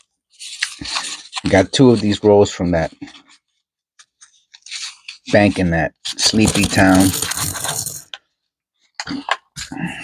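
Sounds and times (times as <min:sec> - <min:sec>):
coins clattering onto cloth: 0:06.9 - 0:08.1.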